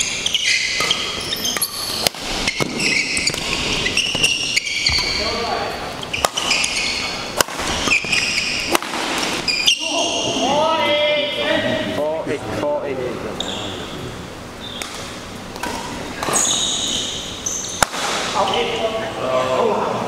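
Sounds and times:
shoes squeaking on floor: 0:00.0 - 0:08.7, 0:09.4 - 0:10.5, 0:13.4 - 0:14.0, 0:16.2 - 0:17.8
racket hitting shuttlecock: 0:00.5 - 0:05.1, 0:06.1 - 0:09.8, 0:14.7 - 0:18.5.

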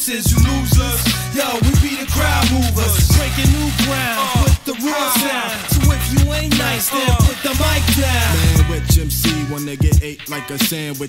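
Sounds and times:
hip hop beat with vocals: 0:00.0 - 0:11.0.

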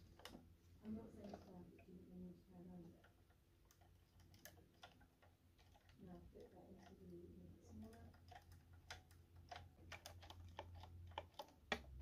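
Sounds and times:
model car clicking and tapping: 0:02.9 - 0:12.0.

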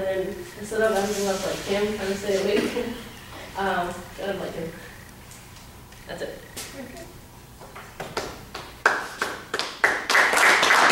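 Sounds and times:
audience clapping: 0:08.0 - 0:10.9.

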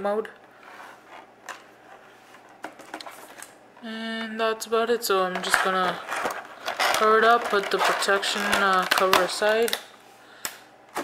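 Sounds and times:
thin plastic crackling: 0:05.4 - 0:09.9.

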